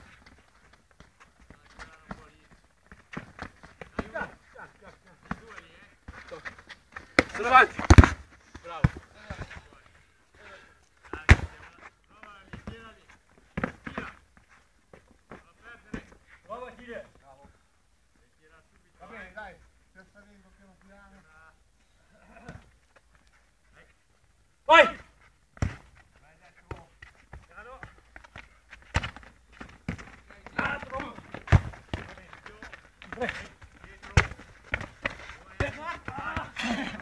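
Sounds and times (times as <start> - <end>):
men calling and shouting: 0.0 - 37.0
football being kicked: 7.0 - 9.6, 11.1 - 11.6, 25.6 - 25.9, 26.7 - 37.0.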